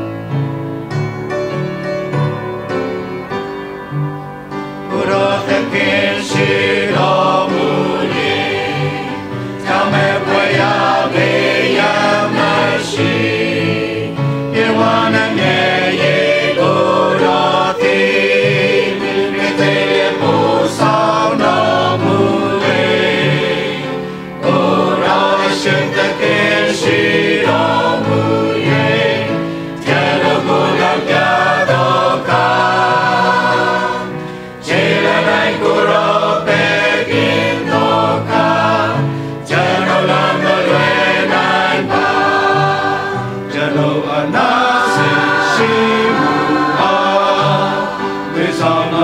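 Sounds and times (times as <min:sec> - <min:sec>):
mixed choir singing: 0:04.8 - 0:49.0
singers breathing: 0:09.2 - 0:09.7, 0:23.9 - 0:24.4, 0:29.3 - 0:29.8, 0:34.1 - 0:34.6, 0:39.0 - 0:39.5.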